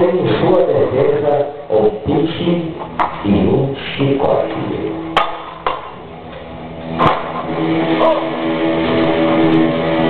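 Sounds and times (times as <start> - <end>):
music with long held notes: 6.0 - 10.0
sharp cracks: 6.9 - 8.4.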